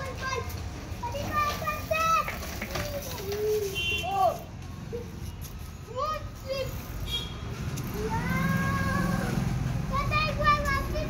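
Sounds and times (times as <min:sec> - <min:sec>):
young child talking: 0:00.0 - 0:04.4, 0:05.9 - 0:06.8, 0:08.0 - 0:11.0.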